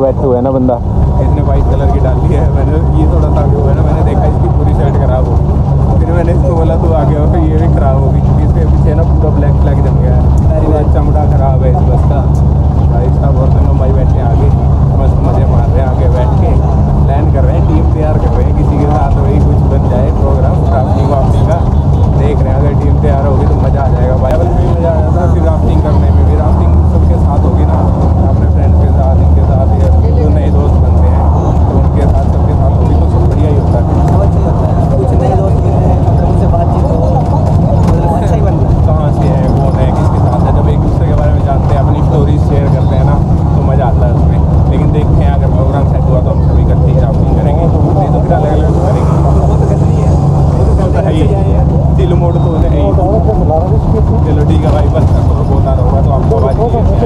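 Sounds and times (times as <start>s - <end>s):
bus engine and road rumble: 0.0s - 57.0s
people talking: 0.0s - 57.0s.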